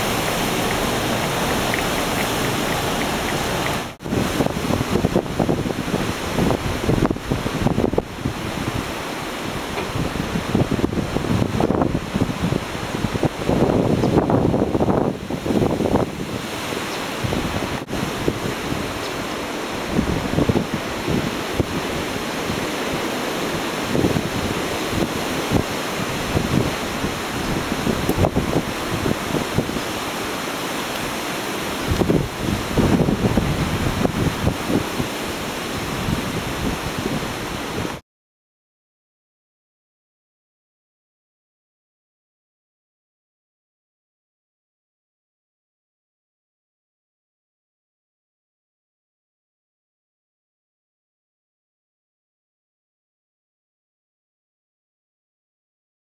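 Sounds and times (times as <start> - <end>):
wind buffeting microphone: 0.0 - 38.0.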